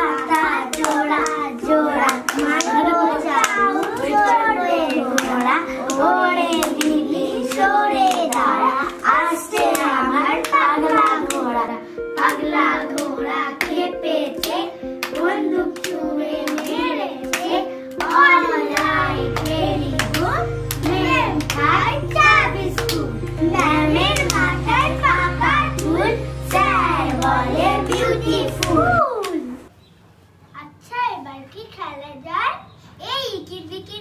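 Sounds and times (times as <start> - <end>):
hand claps: 0.0 - 1.4, 2.0 - 11.5, 12.2 - 13.8, 14.4 - 29.4
background music held tone: 0.0 - 29.2
girls chanting a rhyme: 0.0 - 29.6
deep bass: 18.8 - 29.0.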